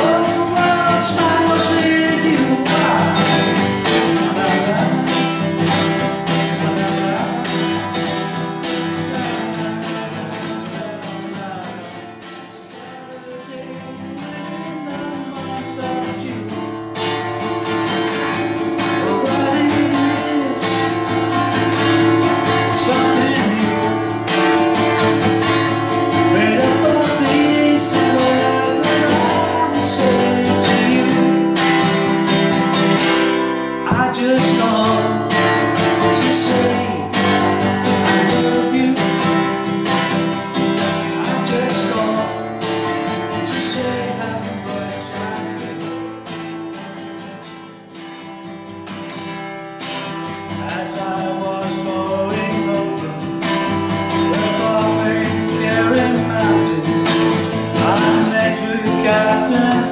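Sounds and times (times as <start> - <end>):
man singing: 0.0 - 46.5, 50.5 - 59.9
acoustic guitar strumming: 0.0 - 59.9.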